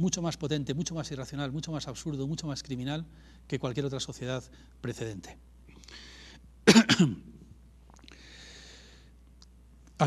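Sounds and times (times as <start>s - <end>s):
man clearing throat: 6.7s - 7.4s.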